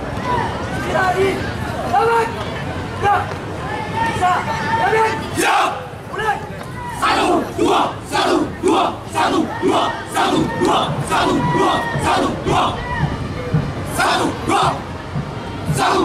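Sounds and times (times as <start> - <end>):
group shouting rhythmic chant: 4.8 - 6.0, 6.9 - 13.2, 13.9 - 14.9, 15.6 - 16.0.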